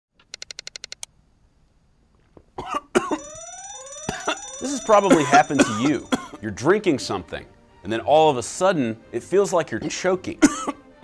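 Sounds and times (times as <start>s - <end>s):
man coughing and choking: 2.6s - 3.2s, 5.6s - 6.4s, 10.4s - 10.8s
quick beeps: 3.2s - 6.1s
rising whooping alarm effect: 3.2s - 6.2s.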